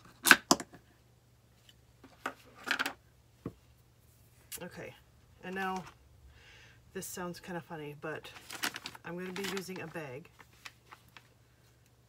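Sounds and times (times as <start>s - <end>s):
handling rustle: 8.3s - 11.8s.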